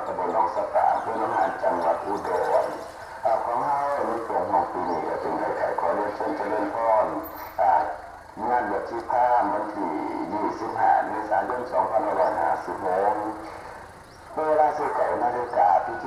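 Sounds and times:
person talking: 0.0 - 13.7, 14.4 - 16.0.

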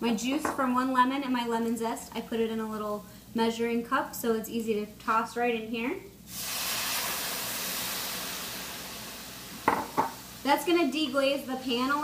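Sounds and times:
liquid sizzling in hot frying pan: 6.3 - 12.0.

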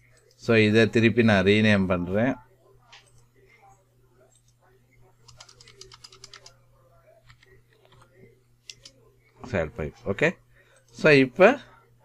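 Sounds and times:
faint keyboard typing: 5.2 - 6.6, 7.2 - 9.0.

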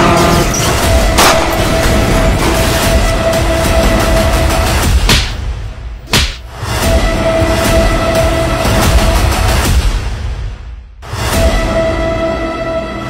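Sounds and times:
droning music: 0.0 - 13.0.

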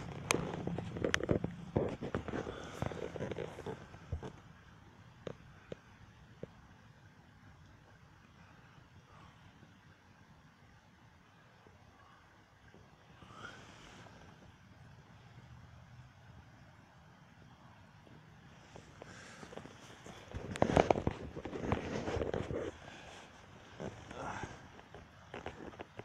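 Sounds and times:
loud crackling and rumbling: 0.0 - 4.3.

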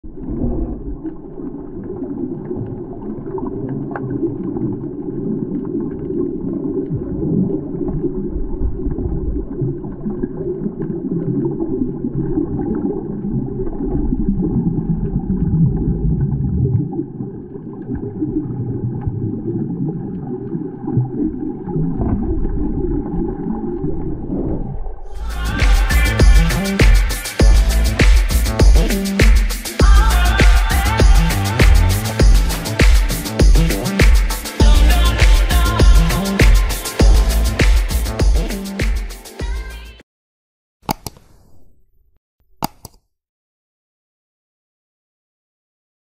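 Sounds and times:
muffled underwater rumble of water: 0.0 - 25.2.

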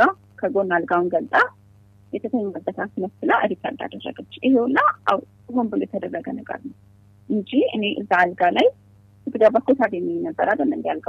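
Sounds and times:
person speaking: 0.0 - 1.5, 2.2 - 6.7, 7.3 - 8.7, 9.3 - 11.0
steady low hum: 0.0 - 11.0.

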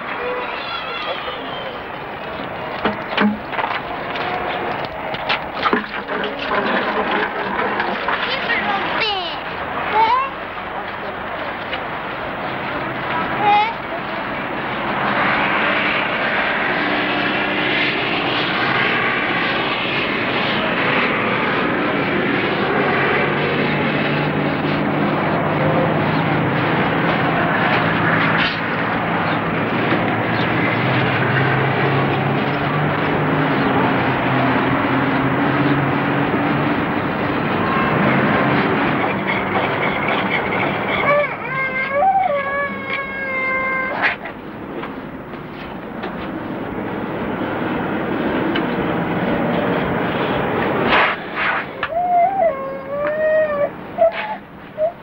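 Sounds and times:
loud engine noise: 0.0 - 55.0.

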